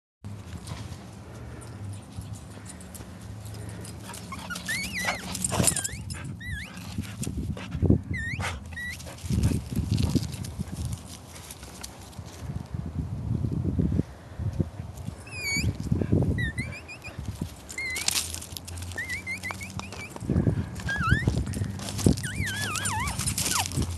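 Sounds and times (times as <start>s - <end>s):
person squeaking to call dogs: 4.2s - 6.9s, 8.1s - 9.1s, 15.2s - 20.2s, 20.8s - 23.9s
dogs running on dry grass: 8.9s - 12.6s, 16.6s - 23.9s.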